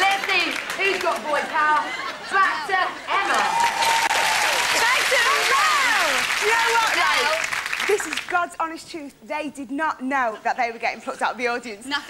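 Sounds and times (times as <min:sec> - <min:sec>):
audience cheering and applauding: 0:03.1 - 0:08.4.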